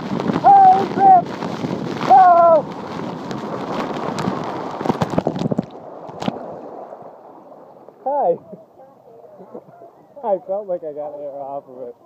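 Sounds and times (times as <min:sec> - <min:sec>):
water rushing and splashing: 0:00.0 - 0:12.0.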